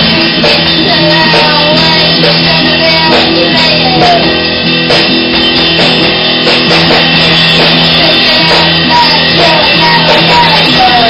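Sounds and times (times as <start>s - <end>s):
drums: 0.0s - 11.0s
electric guitars: 0.0s - 11.0s
punk band playing live: 0.0s - 11.0s.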